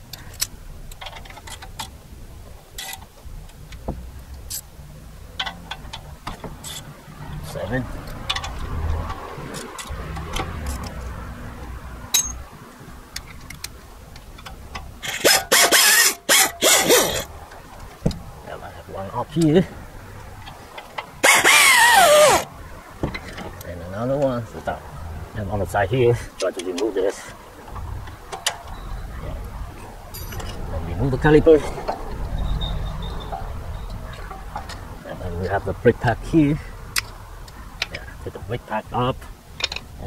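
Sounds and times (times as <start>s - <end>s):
ratchet wrench clicking: 14.4s - 17.3s, 21.2s - 22.5s.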